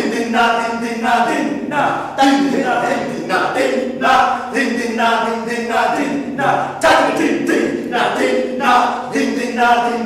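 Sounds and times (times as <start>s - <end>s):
voices singing unaccompanied: 0.0s - 10.0s.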